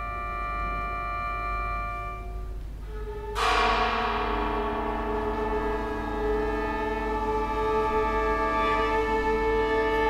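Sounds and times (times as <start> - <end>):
bamboo flutes: 0.0 - 10.0
gong-like metal tone ringing: 0.0 - 10.0.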